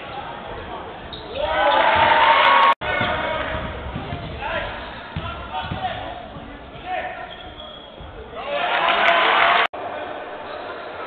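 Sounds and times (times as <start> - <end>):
voices in a hall: 0.0 - 11.0
basketball bouncing on hardwood: 2.8 - 7.2.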